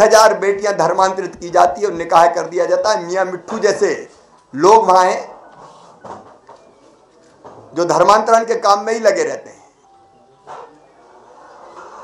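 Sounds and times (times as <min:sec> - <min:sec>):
man speaking: 0:00.0 - 0:05.4, 0:07.7 - 0:09.6
low room noise: 0:00.0 - 0:12.0.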